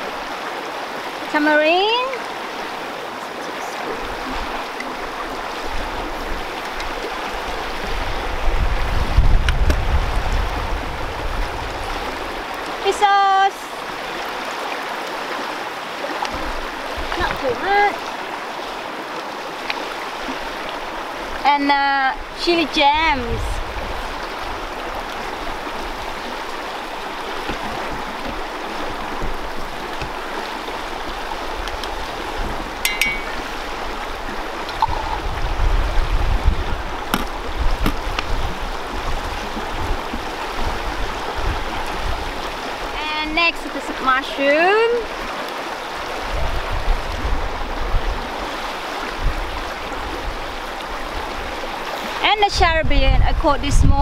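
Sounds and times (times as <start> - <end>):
river rushing over rocks: 0.0 - 52.4
wind rumble on microphone: 3.8 - 12.6, 22.1 - 43.2, 45.9 - 54.0.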